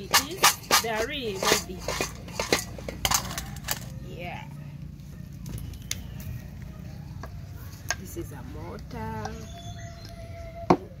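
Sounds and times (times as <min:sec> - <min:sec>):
dried fish rattling in metal basin: 0:00.0 - 0:04.3.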